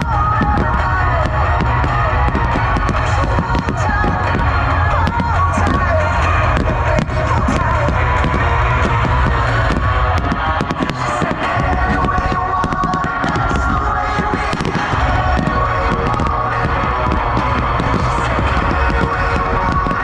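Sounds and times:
fireworks bursting and crackling: 0.0 - 20.0
loud music: 0.0 - 20.0.

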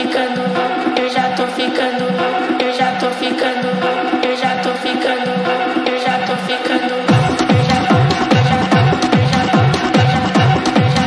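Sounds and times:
techno kick drum: 0.0 - 11.0.

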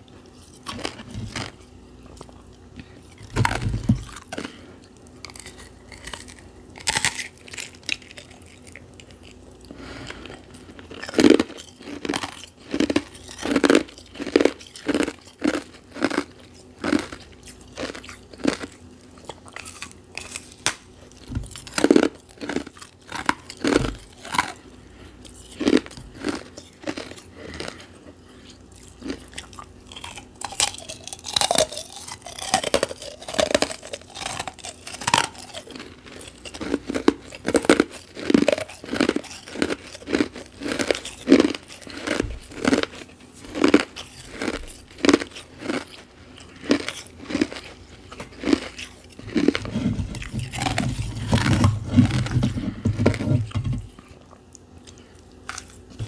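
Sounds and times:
crunching ice chewing: 0.0 - 56.0.

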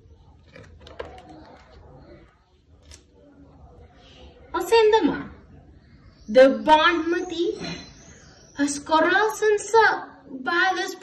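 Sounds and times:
book pages being handled: 0.2 - 3.2.

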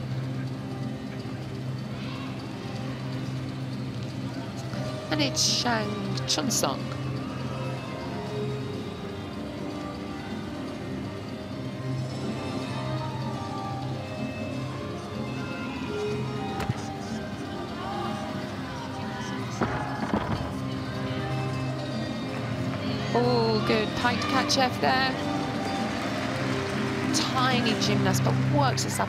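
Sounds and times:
crowd hum: 12.3 - 29.0.

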